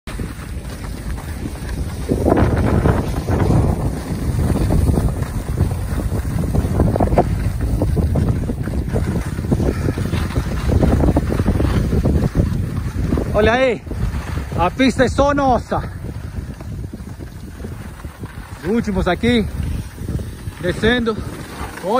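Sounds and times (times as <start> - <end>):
skis sliding over snow: 0.1 - 21.9
wind buffeting microphone: 0.1 - 21.9.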